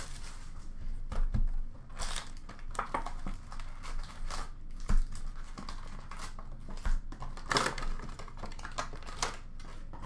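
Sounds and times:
packaging rustle: 0.0 - 0.8, 1.9 - 10.0.

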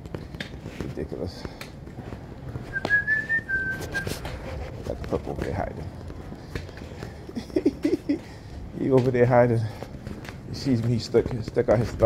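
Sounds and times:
person whistling a note: 2.7 - 4.2.

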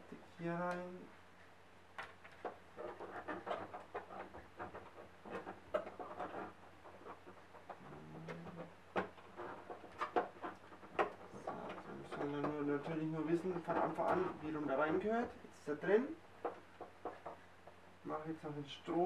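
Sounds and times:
plastic plug scraping: 2.0 - 15.3.

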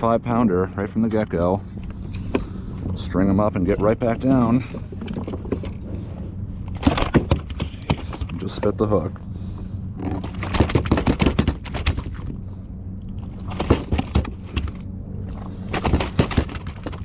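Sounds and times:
low hum: 0.0 - 17.0
fish slapping in landing net: 10.2 - 12.3, 15.7 - 17.0.

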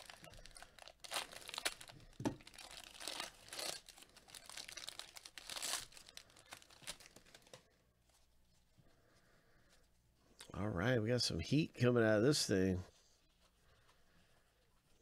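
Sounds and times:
foil wrapper crinkling and tearing: 0.0 - 7.6.

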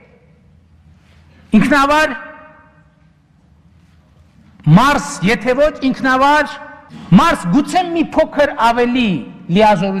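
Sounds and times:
man's voice echoing: 0.0 - 0.4, 1.3 - 3.0, 4.4 - 10.0.

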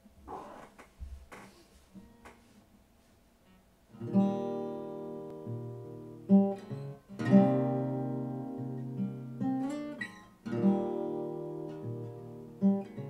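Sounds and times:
acoustic guitar chord ringing: 4.0 - 13.0.

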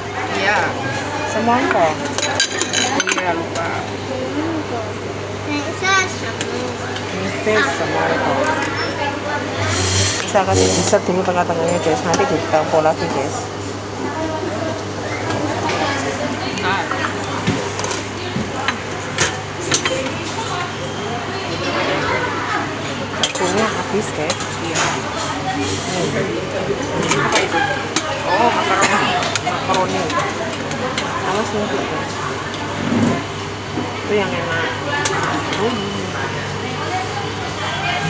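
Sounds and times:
steady low hum: 0.0 - 21.5
background chatter: 0.0 - 38.0
ladle clinking on metal tubs: 1.3 - 3.8, 9.9 - 13.4, 23.2 - 31.9.

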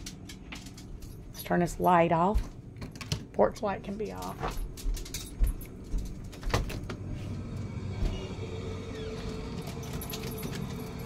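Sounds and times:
handling knocks and clicks: 0.0 - 7.0
low mechanical hum: 0.0 - 11.0.

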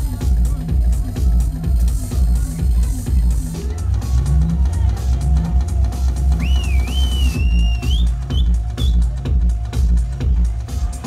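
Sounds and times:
deep kick drum: 0.0 - 11.0
techno over sound system: 0.0 - 11.0
high wavering whistle: 6.3 - 9.0.

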